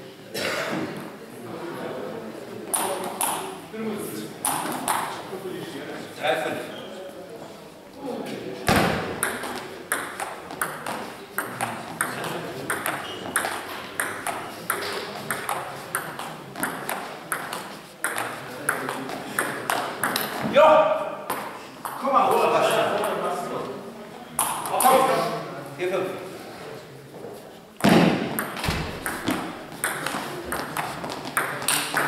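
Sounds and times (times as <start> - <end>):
voices: 0.3 - 27.5
table tennis ball clicking: 2.7 - 3.5, 4.4 - 5.1, 9.2 - 20.4, 28.4 - 32.0.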